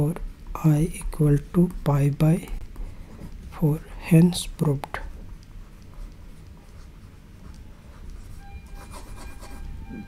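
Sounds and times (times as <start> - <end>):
stylus scratching on pen tablet: 0.0 - 10.0.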